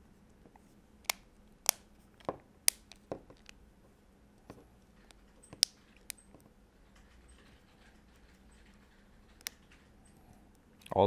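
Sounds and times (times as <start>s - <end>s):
plastic clips snapping: 1.0s - 3.6s, 5.0s - 6.2s, 9.3s - 9.6s.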